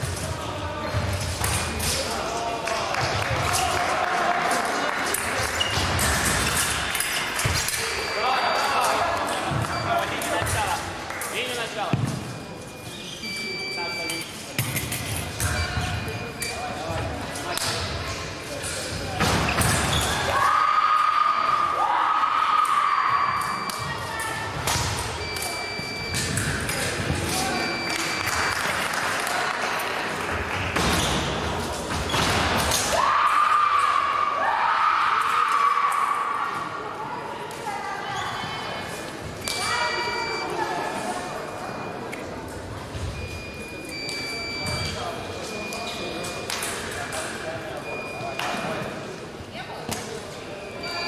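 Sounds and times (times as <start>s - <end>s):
mingled voices: 0.0s - 51.0s
fencing blades clacking: 5.0s - 11.8s, 23.4s - 28.8s, 45.6s - 47.5s
short high beeps: 12.3s - 14.4s, 25.2s - 28.4s, 39.4s - 42.2s, 43.0s - 48.8s, 50.6s - 51.0s.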